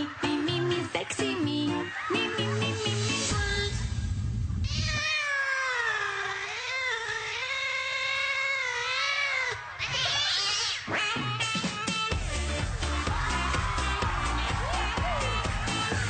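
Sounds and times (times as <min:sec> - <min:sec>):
music with a beat: 0:11.4 - 0:16.0.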